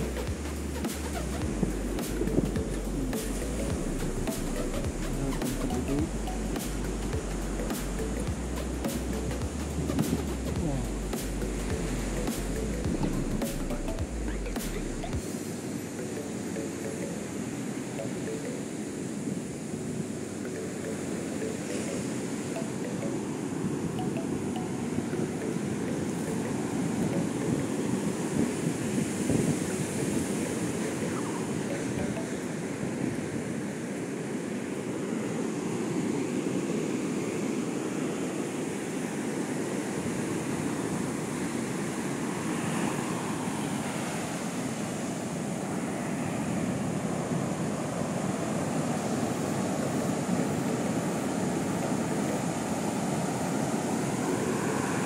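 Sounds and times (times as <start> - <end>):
waves breaking on beach: 0.0 - 55.0.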